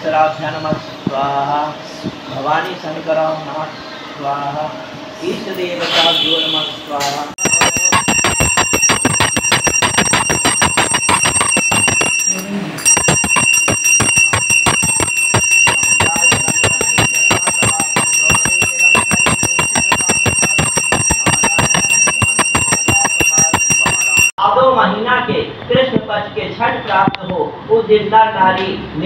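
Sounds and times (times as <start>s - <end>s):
hand bell ringing rapidly: 7.4s - 24.4s.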